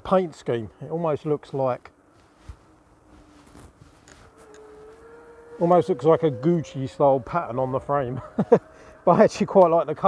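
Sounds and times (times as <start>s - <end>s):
wind rustle on microphone: 2.1s - 6.0s
electric bike motor whine: 2.7s - 10.0s.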